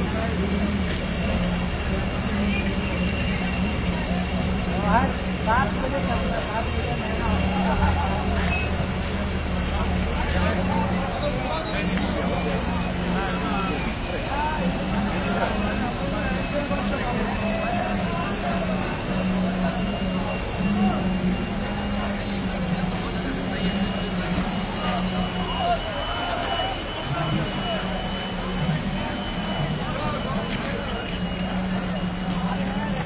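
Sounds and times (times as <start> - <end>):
many people talking: 0.0 - 33.0.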